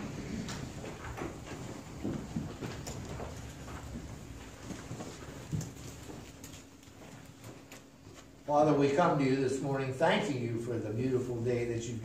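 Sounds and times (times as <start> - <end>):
crowd shuffling and rustling: 0.0 - 8.4.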